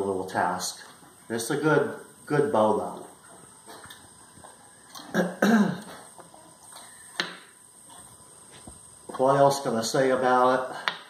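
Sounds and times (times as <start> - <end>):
man coughing: 5.1 - 5.9.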